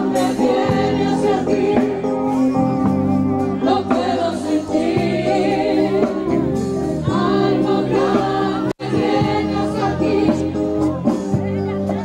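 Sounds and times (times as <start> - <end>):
gospel group singing: 0.0 - 11.4
held low accompanying notes: 0.0 - 12.0.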